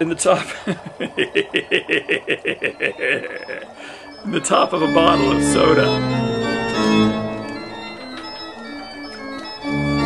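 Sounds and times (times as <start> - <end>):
person laughing: 0.3 - 4.0.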